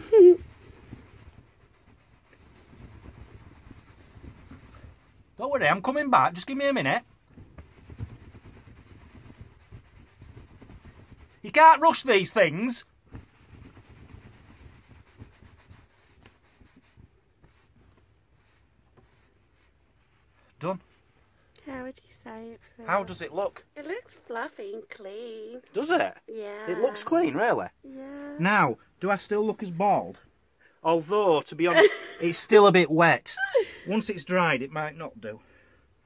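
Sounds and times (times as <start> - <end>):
person laughing: 0.0 - 0.4, 31.7 - 32.3, 33.4 - 33.8
towel rubbing hair: 0.0 - 6.0, 7.3 - 21.1.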